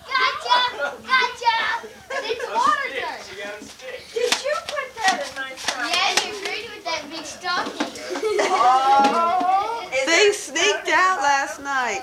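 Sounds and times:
chatter of adults and children: 0:00.0 - 0:12.0.

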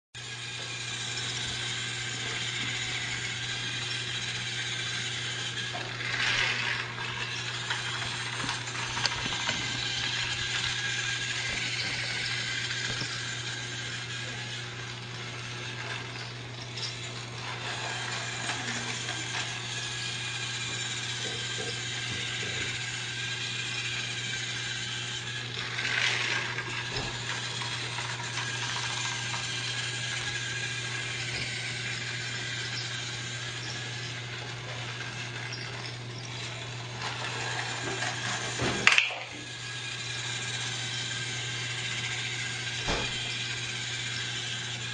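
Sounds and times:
toy train motor and gears clicking: 0:00.2 - 0:44.9
toy train rattling: 0:00.2 - 0:44.9.

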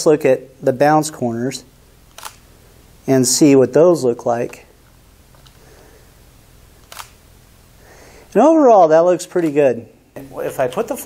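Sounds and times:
low room hum: 0:00.0 - 0:11.0
camera shutter click: 0:02.1 - 0:02.5, 0:06.8 - 0:07.2.

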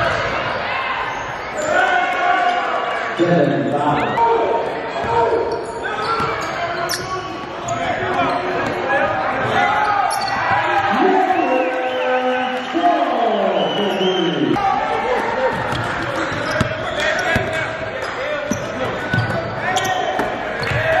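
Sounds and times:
echoing voices: 0:01.6 - 0:21.0
sneakers squeaking: 0:04.9 - 0:10.8, 0:15.3 - 0:21.0.

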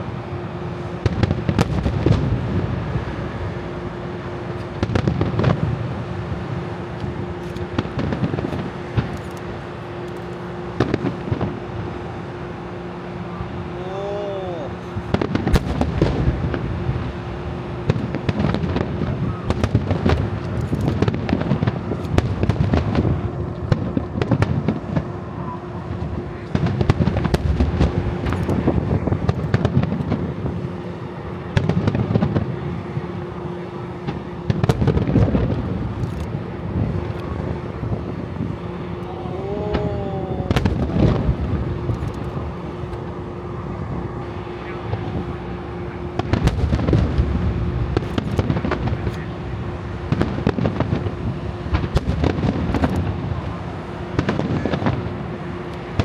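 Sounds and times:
fireworks booming and crackling: 0:00.0 - 0:56.0
steady hum: 0:00.0 - 0:56.0.

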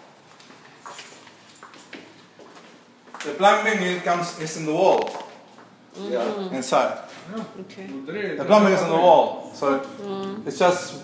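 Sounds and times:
footsteps on tiled floor: 0:00.0 - 0:03.3.

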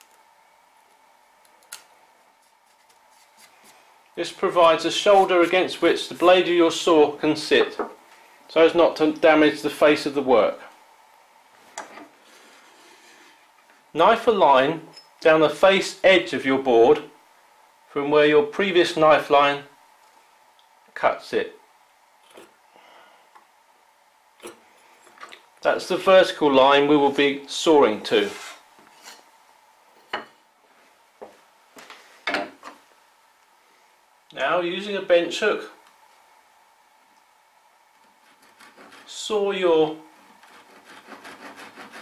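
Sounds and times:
wooden knocks on a workbench: 0:07.8 - 0:08.0.

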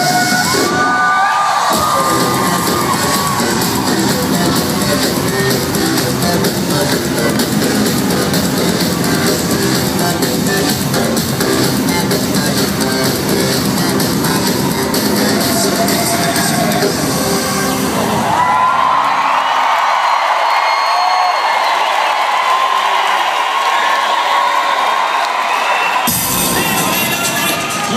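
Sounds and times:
crowd cheering and screaming: 0:00.0 - 0:11.9, 0:12.6 - 0:27.9
electronic dance-pop music: 0:00.0 - 0:19.1, 0:25.9 - 0:27.9.

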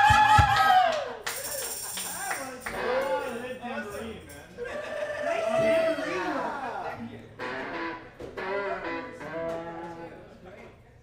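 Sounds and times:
voices in room: 0:01.0 - 0:11.0
electric guitar playing: 0:07.4 - 0:10.0.

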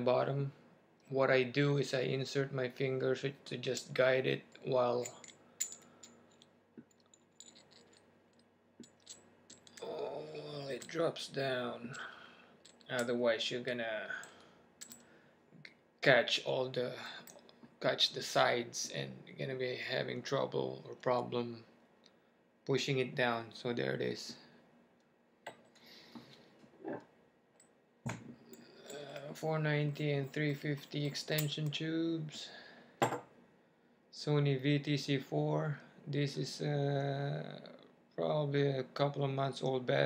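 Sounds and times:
light scraping of metal parts: 0:03.6 - 0:09.8, 0:25.5 - 0:27.1
metal parts clicking: 0:04.5 - 0:09.9, 0:14.2 - 0:15.0.

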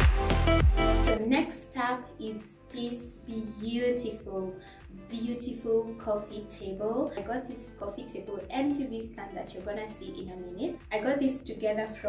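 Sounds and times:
music with sung vocals: 0:00.0 - 0:12.0.

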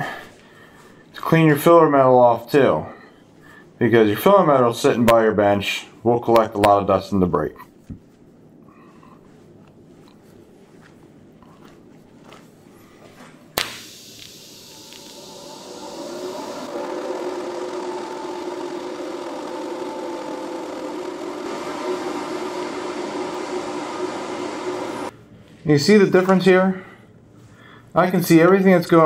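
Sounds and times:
welding arc buzzing hiss: 0:13.6 - 0:25.1
welding arc striking crack: 0:13.6 - 0:25.1.

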